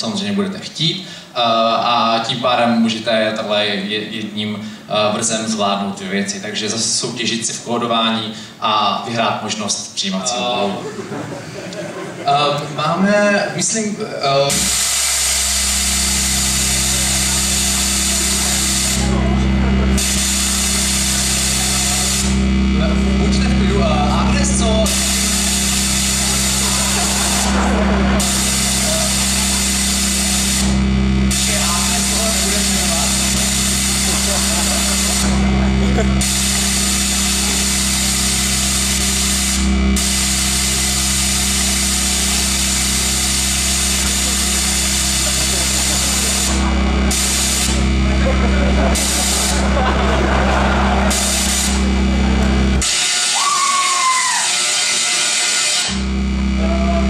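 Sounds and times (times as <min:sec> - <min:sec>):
electronic buzz over loudspeakers: 0:00.0 - 0:57.0
faint voices: 0:16.7 - 0:20.4, 0:21.0 - 0:36.2, 0:45.1 - 0:52.8.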